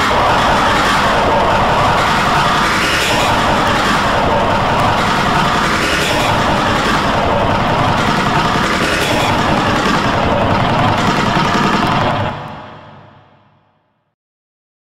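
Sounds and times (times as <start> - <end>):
distorted overlapping sounds: 0.0 - 13.1.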